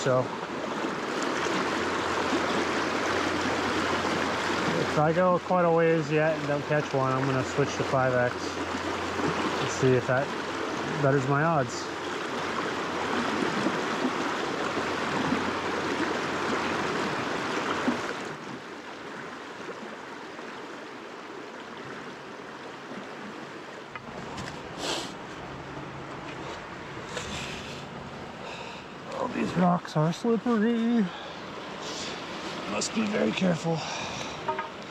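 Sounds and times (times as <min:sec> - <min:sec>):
river water rushing over rocks: 0:00.0 - 0:34.9.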